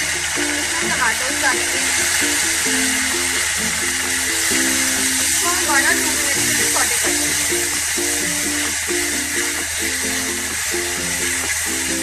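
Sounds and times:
plucked-string background music: 0:00.0 - 0:12.0
tomatoes sizzling in hot oil: 0:00.0 - 0:12.0.

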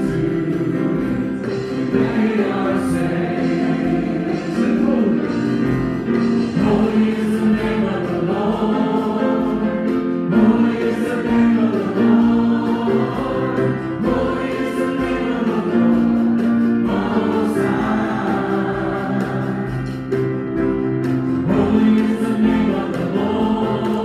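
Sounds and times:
band accompaniment: 0:00.0 - 0:24.0
congregation singing: 0:00.0 - 0:24.0.

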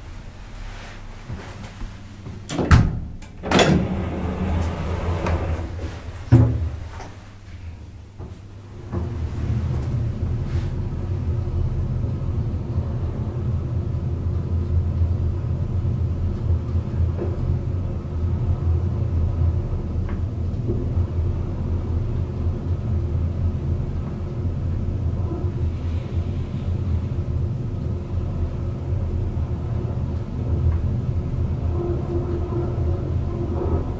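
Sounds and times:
elevator low rumble: 0:00.0 - 0:33.9
faint elevator clicks: 0:01.7 - 0:10.1.

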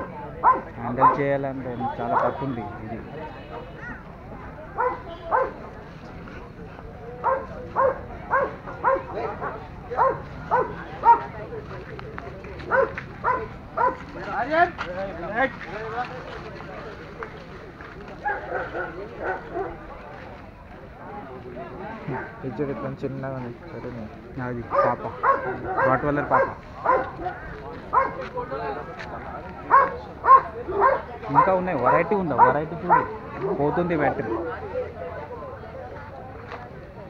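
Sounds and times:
people chattering: 0:00.0 - 0:37.0
people talking: 0:00.0 - 0:37.0
dog barking: 0:00.4 - 0:01.3, 0:02.1 - 0:02.4, 0:04.7 - 0:05.6, 0:07.2 - 0:11.3, 0:12.7 - 0:14.1, 0:18.2 - 0:19.8, 0:24.7 - 0:27.3, 0:27.9 - 0:28.3, 0:29.7 - 0:33.2.

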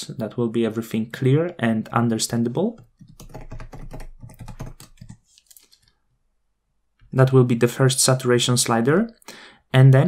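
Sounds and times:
computer keyboard typing: 0:02.2 - 0:05.2.

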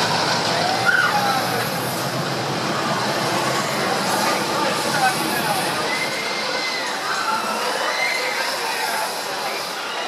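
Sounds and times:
rushing background noise: 0:00.0 - 0:10.0.

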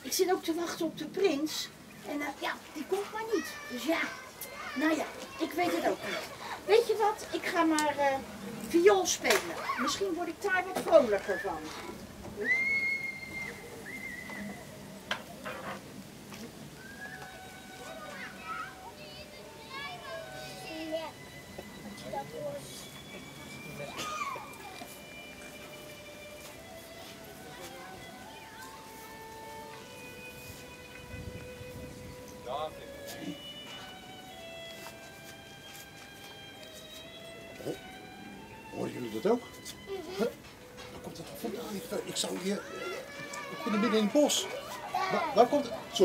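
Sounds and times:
slow violin music: 0:16.8 - 0:46.0.

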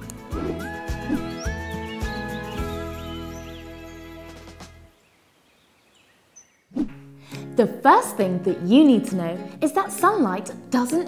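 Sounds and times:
background music: 0:00.0 - 0:05.0, 0:06.9 - 0:11.0.

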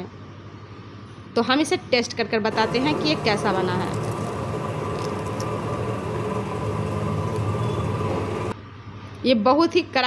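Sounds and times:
low machine hum with hiss: 0:00.0 - 0:10.0.

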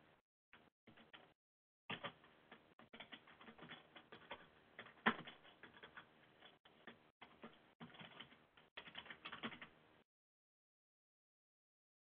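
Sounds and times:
computer keyboard typing: 0:00.9 - 0:09.8.

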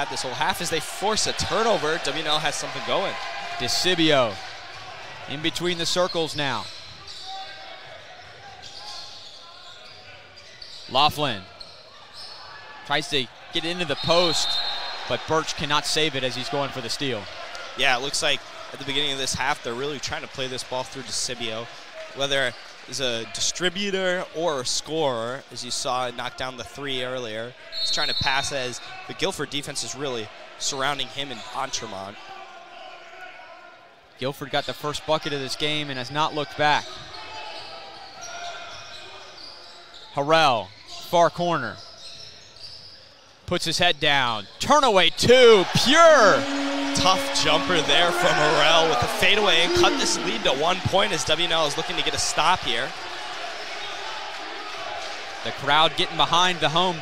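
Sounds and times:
crowd murmur: 0:45.4 - 0:52.5.

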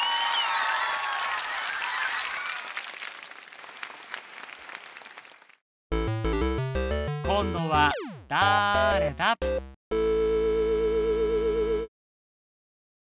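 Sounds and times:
crowd applause: 0:00.0 - 0:05.6.

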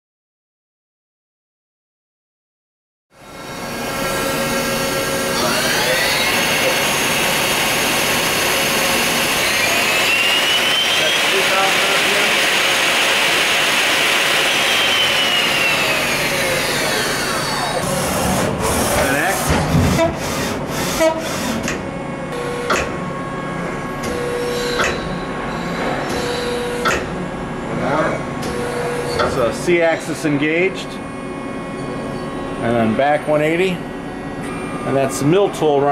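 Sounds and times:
lathe spindle whine: 0:03.2 - 0:19.5, 0:27.5 - 0:35.9.

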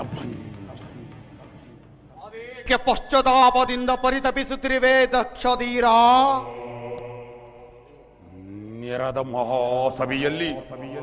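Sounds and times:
man chanting: 0:02.1 - 0:11.0.

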